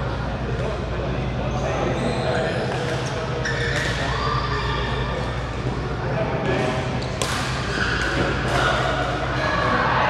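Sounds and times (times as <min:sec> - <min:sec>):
voices: 0:00.0 - 0:10.0
racket hitting shuttlecock: 0:07.2 - 0:08.9.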